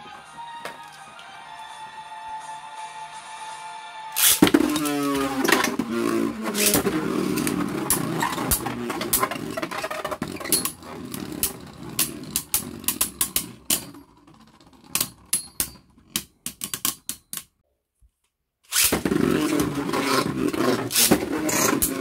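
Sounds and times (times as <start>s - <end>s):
spinning tops clacking together: 4.2s - 5.6s
spinning tops whirring: 4.2s - 16.4s, 18.7s - 22.0s.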